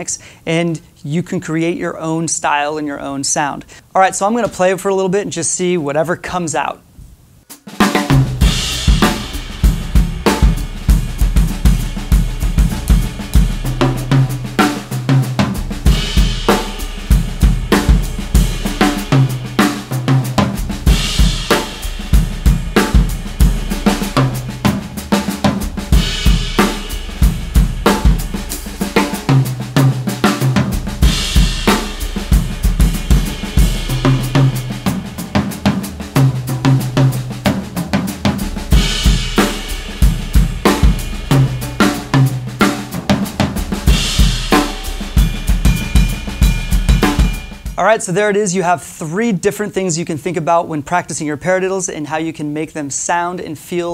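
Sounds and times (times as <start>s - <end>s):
drum kit groove: 0.0s - 6.7s, 7.3s - 53.9s
cymbal crash: 8.0s - 37.4s, 38.4s - 47.8s.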